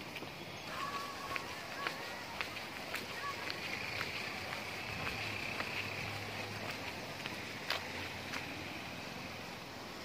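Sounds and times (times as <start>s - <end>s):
footsteps on concrete: 0.0s - 8.7s
faint background voices: 0.6s - 7.3s.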